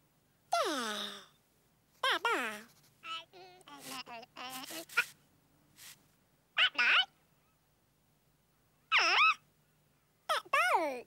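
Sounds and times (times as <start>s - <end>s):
cartoon character squeaky gibberish voice: 6.6s - 7.2s, 8.9s - 9.4s, 10.3s - 11.0s.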